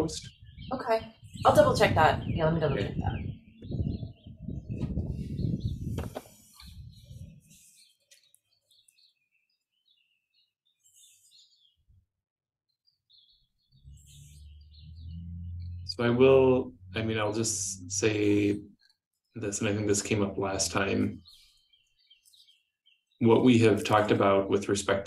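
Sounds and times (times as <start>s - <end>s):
faint bird chirps: 0.0s - 12.1s, 12.7s - 19.5s
steady low hum: 15.0s - 18.6s.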